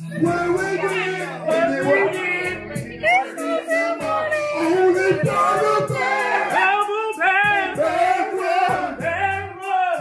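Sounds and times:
karaoke backing music: 0.0 - 10.0
person singing into a microphone: 0.0 - 10.0.

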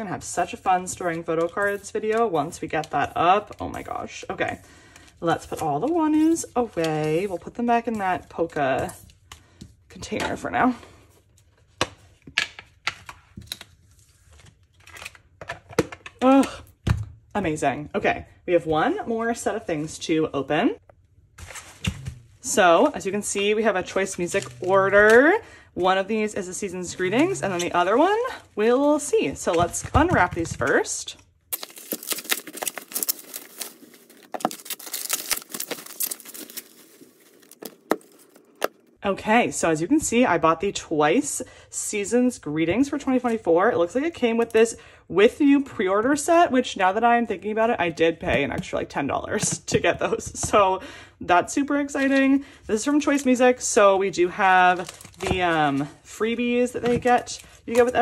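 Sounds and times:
bubble wrap snapping: 31.5 - 38.8
bubble wrap crinkling: 31.5 - 39.0, 54.7 - 55.4.

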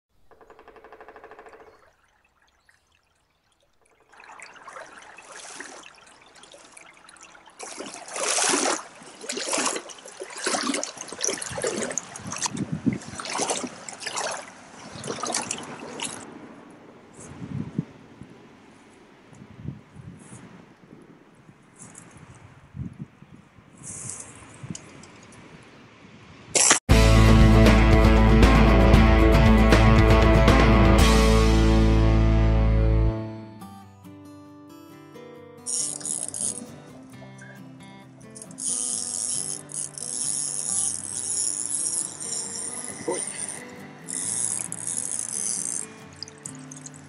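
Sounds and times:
river water splashing: 0.9 - 22.7, 23.5 - 26.8, 35.7 - 47.0.

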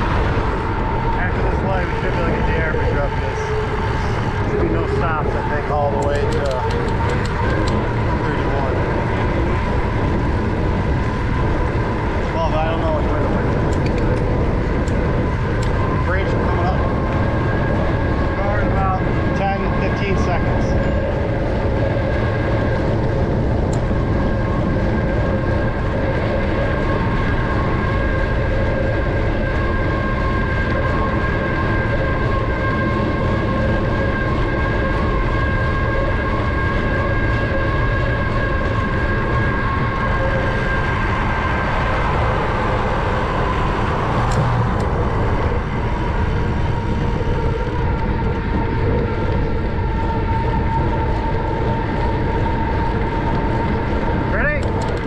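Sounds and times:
constant high whine: 0.0 - 55.0
wind rush on microphone: 0.0 - 55.0.

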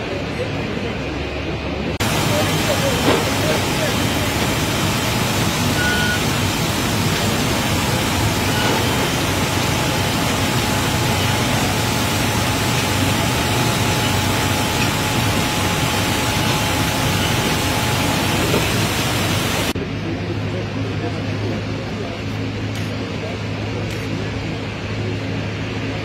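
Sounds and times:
aircraft ground rushing noise: 0.0 - 26.0
faint steady whine: 0.0 - 26.0
low hum: 1.9 - 26.0.

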